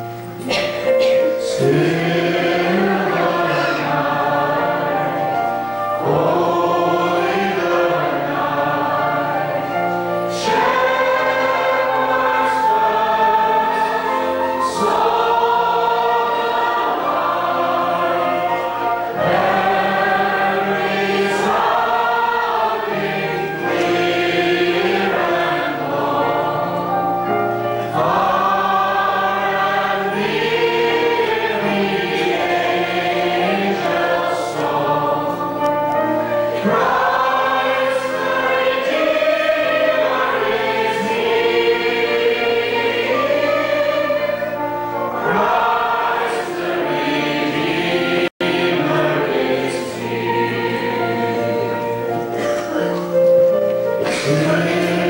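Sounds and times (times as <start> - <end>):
men's choir singing a hymn: 0.0 - 55.0.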